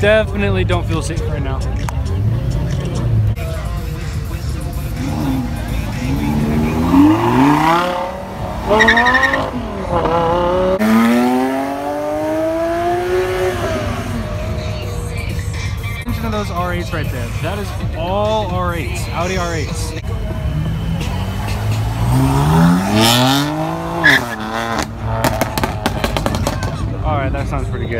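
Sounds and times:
car engine revving: 1.7 - 16.6, 20.0 - 27.0.

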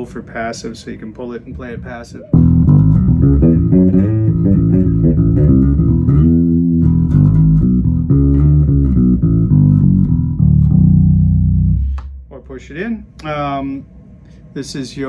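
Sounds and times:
electric bass played fingerstyle: 2.3 - 12.3.

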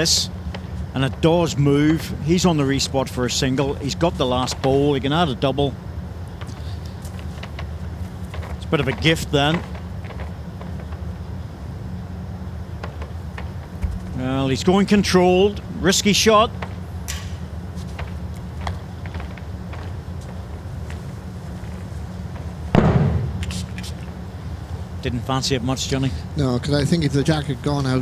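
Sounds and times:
low hum: 0.0 - 28.0.

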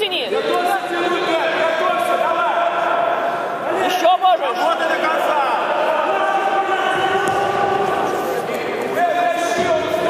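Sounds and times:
crowd murmur in large hall: 0.0 - 10.0.

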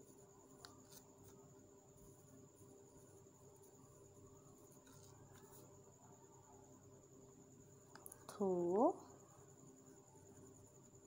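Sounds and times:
faint high whine: 0.0 - 11.0.

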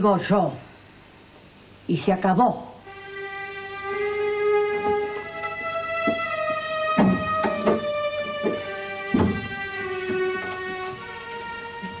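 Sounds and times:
string-like chords music: 2.8 - 12.0
short knocks: 7.0 - 10.5.

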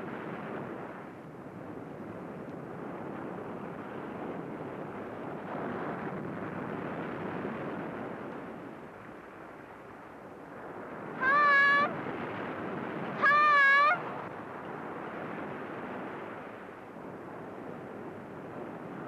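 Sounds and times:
surf washing against rocks: 10.4 - 14.6
girl calling out: 11.2 - 12.0, 13.2 - 14.0.

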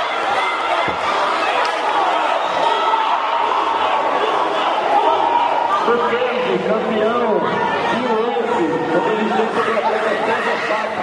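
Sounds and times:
crowd chatter: 0.0 - 11.0
men shouting and talking: 0.0 - 11.0.

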